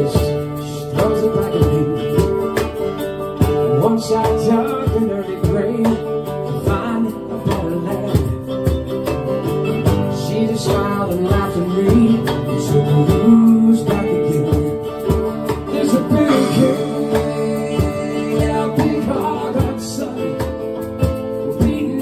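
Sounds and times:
acoustic guitar: 0.0 - 22.0
cajon beat: 0.0 - 22.0
mandolin: 0.0 - 22.0.

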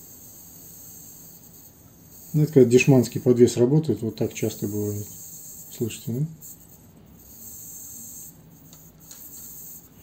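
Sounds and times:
camera gimbal motor hiss: 4.3 - 10.0.

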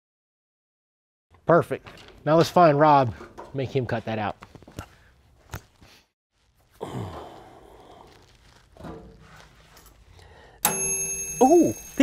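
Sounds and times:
falling sigh-like voice: 6.8 - 8.2.

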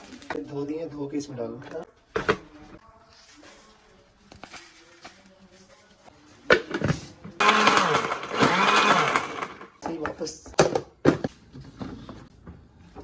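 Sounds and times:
blender motor running: 7.4 - 9.7.

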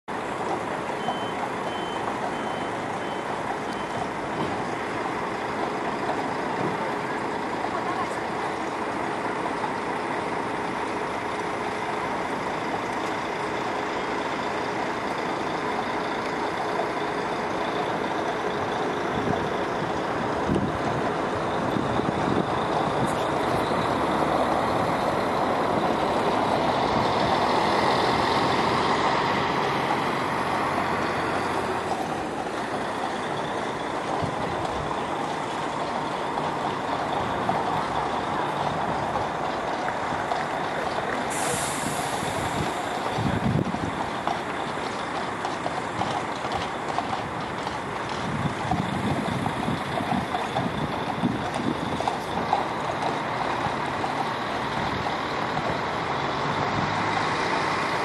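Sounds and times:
traffic and engines: 0.0 - 58.0
reversing alarm beeps: 0.8 - 4.5.

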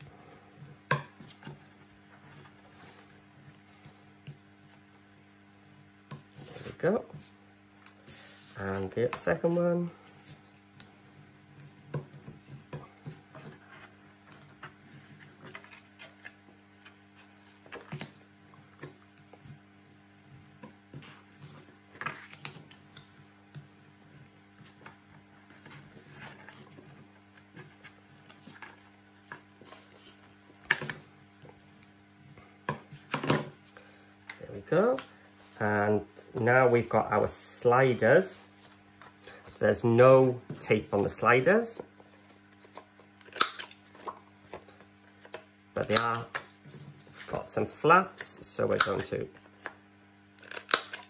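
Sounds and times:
steady low hum: 0.0 - 51.0
man talking: 6.7 - 7.2, 8.5 - 10.0, 34.4 - 38.5, 39.5 - 41.9, 45.8 - 46.4, 47.3 - 49.4.

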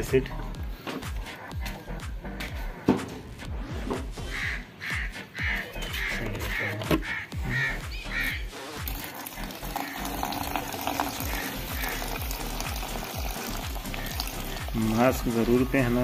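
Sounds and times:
background music with a beat: 0.0 - 16.0
liquid pouring into a bucket: 8.8 - 15.3.

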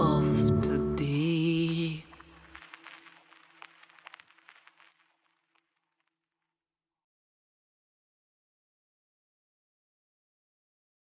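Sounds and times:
faint crackles and clicks: 1.1 - 6.7.

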